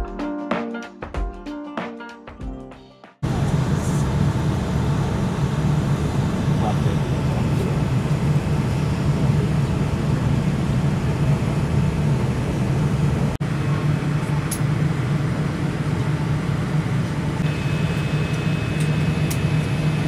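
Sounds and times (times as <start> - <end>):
airliner cabin low hum: 3.2 - 20.0.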